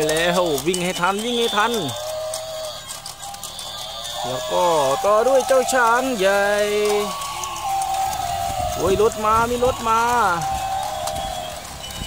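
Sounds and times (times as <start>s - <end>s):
quick irregular clicking: 0.0s - 12.0s
toy gear motors whirring: 0.0s - 12.0s.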